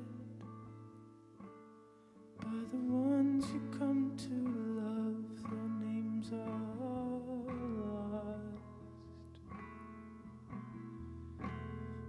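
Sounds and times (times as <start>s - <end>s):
man singing: 0.0s - 0.6s, 2.4s - 9.1s
acoustic guitar plucking: 0.0s - 12.0s.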